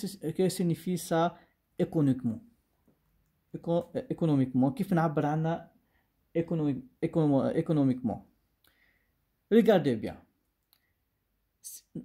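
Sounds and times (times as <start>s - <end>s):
man speaking: 0.0s - 2.6s, 3.5s - 8.4s, 9.5s - 10.3s, 11.6s - 12.0s.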